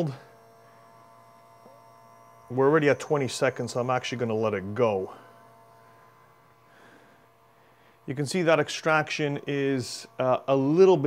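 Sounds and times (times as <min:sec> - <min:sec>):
man speaking: 0:00.0 - 0:00.3, 0:02.5 - 0:05.3, 0:08.1 - 0:11.0
espresso machine pump humming: 0:00.0 - 0:11.0.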